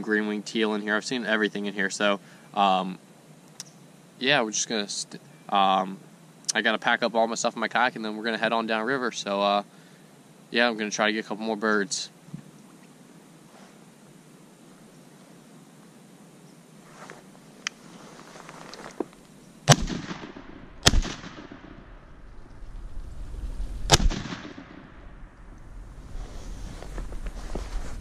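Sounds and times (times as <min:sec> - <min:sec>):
shotgun shots echoing: 0:19.7 - 0:22.0, 0:23.9 - 0:25.1.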